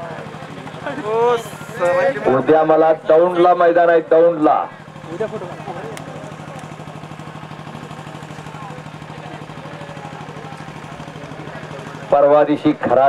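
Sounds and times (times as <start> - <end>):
crowd murmuring: 0.0 - 13.0
engine idling: 0.0 - 13.0.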